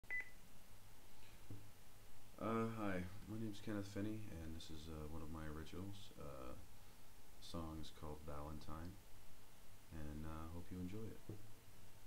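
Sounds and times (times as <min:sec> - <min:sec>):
faint low hum: 0:00.1 - 0:12.0.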